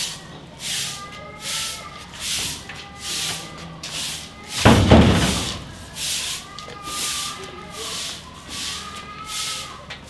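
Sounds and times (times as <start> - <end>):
broom sweeping paving stones: 0.0 - 10.0.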